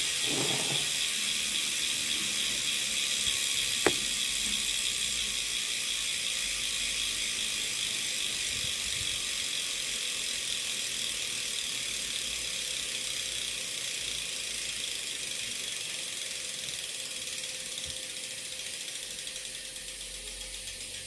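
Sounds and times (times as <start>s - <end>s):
bike wheel freehub ticking: 0.0s - 21.0s.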